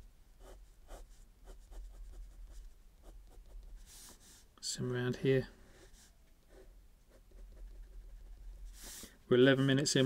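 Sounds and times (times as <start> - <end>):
pen scratching on paper: 5.7 - 9.1.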